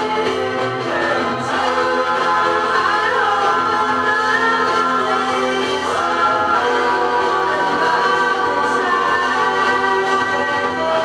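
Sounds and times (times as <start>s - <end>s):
pop song with harmony vocals: 0.0s - 11.0s.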